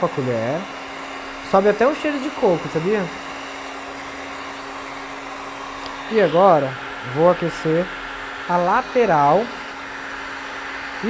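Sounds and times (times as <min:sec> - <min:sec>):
heat gun running: 0:00.0 - 0:11.0.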